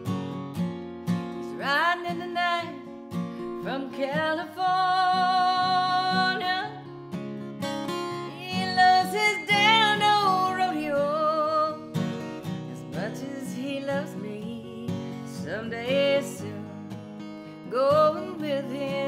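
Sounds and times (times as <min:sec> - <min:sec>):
strummed acoustic guitar: 0:00.0 - 0:19.0
woman singing country ballad: 0:01.0 - 0:19.0.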